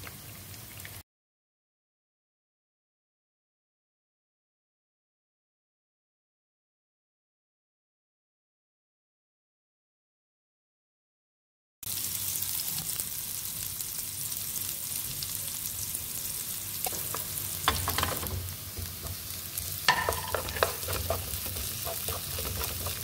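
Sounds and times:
onions sizzling in oil: 0:11.8 - 0:23.0
wooden spoon scraping pan: 0:16.9 - 0:23.0.

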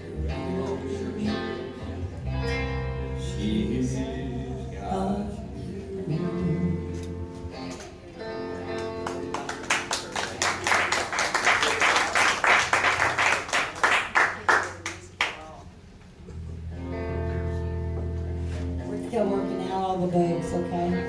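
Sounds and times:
live country band: 0:00.0 - 0:10.3, 0:16.1 - 0:21.0.

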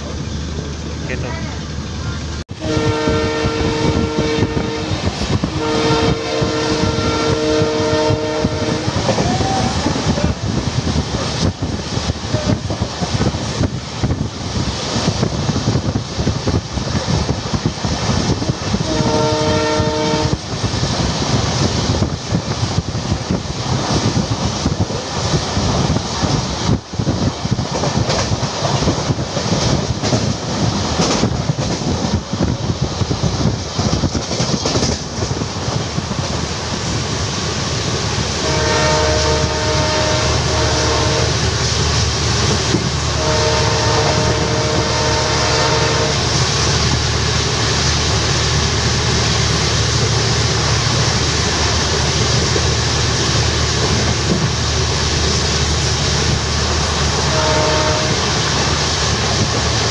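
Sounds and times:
locomotive horn blasts: 0:02.6 - 0:09.2, 0:18.5 - 0:20.4, 0:38.4 - 0:41.4, 0:43.1 - 0:46.4, 0:57.2 - 0:58.7
train wheels clattering over rail joints: 0:20.4 - 0:38.2.

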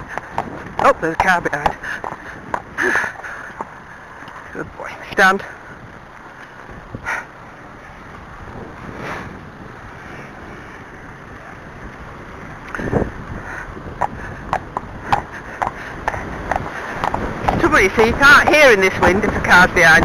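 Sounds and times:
horse hooves clicking on lane: 0:00.0 - 0:04.6, 0:11.4 - 0:20.0
wind buffeting microphone: 0:00.0 - 0:20.0.

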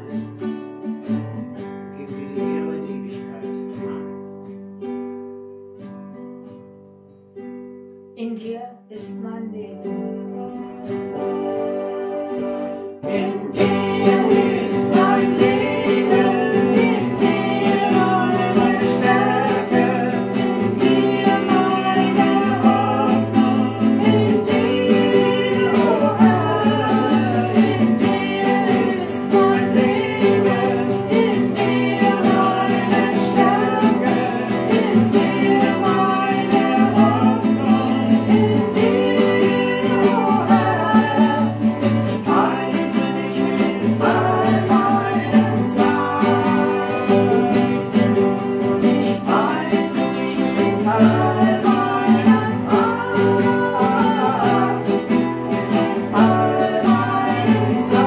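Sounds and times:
strummed acoustic guitar: 0:00.0 - 0:58.0
people singing worship song: 0:12.9 - 0:58.0.

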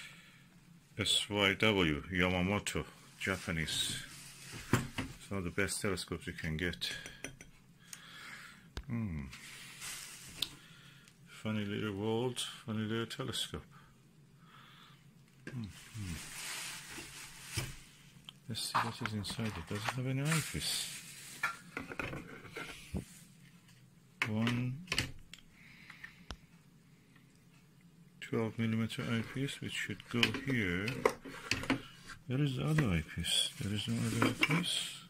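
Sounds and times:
bubble wrap rustling: 0:03.1 - 0:05.4, 0:09.4 - 0:10.7, 0:15.5 - 0:18.2, 0:19.0 - 0:21.8, 0:32.6 - 0:34.8.

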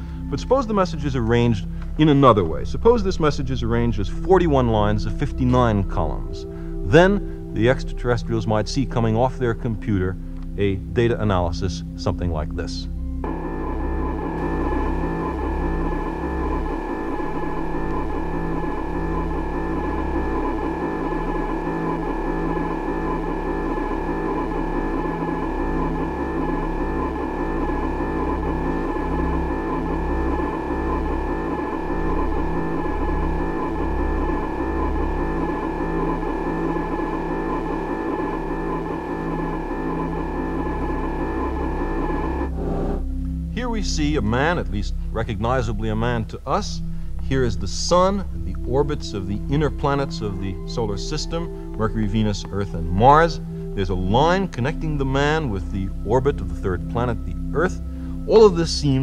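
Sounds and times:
ambient drone music: 0:00.0 - 0:59.0
low uneven pulse: 0:00.0 - 0:59.0.

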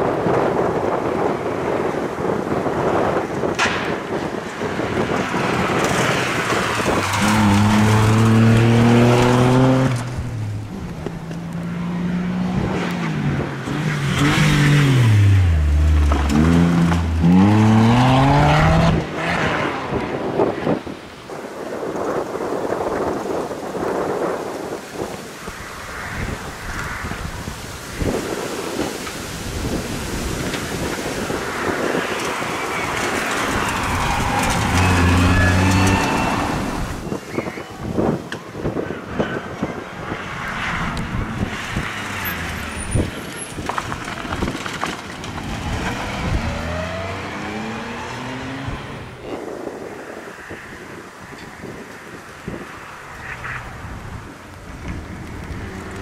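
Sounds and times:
rushing noise: 0:02.6 - 0:11.2, 0:24.0 - 0:38.2
rally car engine revving: 0:05.1 - 0:20.3, 0:31.2 - 0:37.2, 0:40.2 - 0:49.3.

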